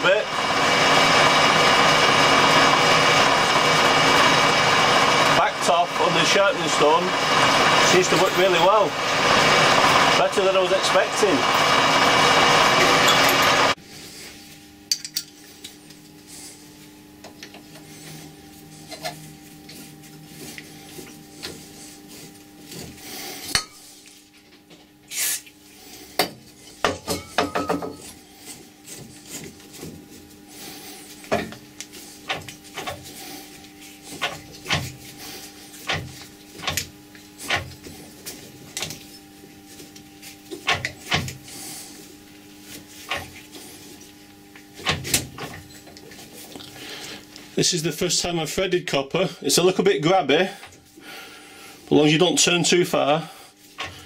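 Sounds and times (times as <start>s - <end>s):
drill boring into metal: 0.0s - 13.8s
steady hum: 0.0s - 54.0s.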